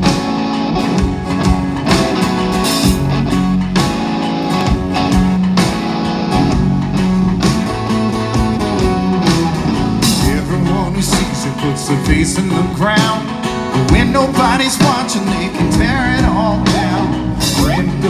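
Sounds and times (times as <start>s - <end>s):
rock band playing: 0.0s - 18.0s.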